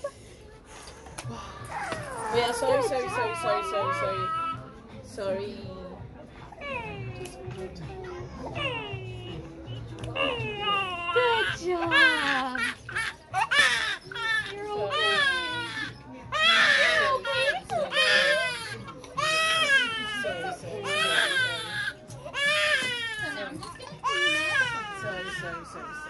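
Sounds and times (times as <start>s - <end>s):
baby crying: 10.2s - 26.0s.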